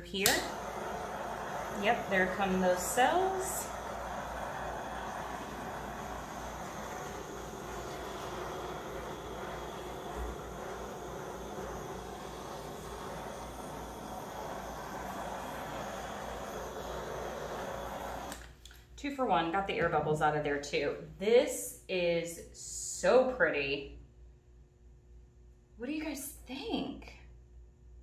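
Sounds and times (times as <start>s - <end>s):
torch flame hissing: 0.0s - 18.5s.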